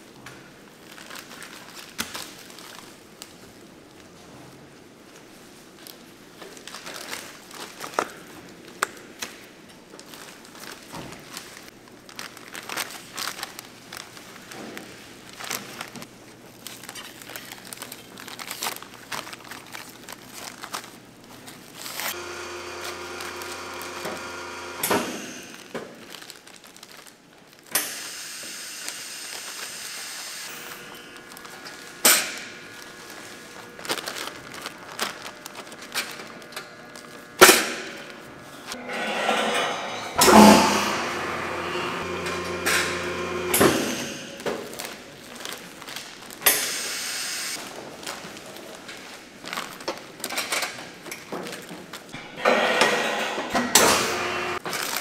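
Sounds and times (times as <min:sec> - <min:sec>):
plastic bags rustling: 0:00.1 - 0:24.6, 0:25.4 - 0:27.7, 0:30.5 - 0:38.8, 0:44.2 - 0:46.5, 0:47.6 - 0:52.1, 0:54.6 - 0:55.0
machine humming: 0:22.1 - 0:25.8, 0:29.8 - 0:44.7, 0:52.2 - 0:54.6.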